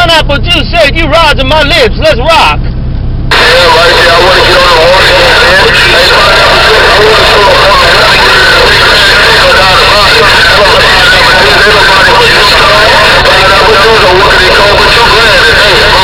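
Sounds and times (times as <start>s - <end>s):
steady low hum: 0.0s - 16.0s
distorted radio voice: 3.3s - 16.0s.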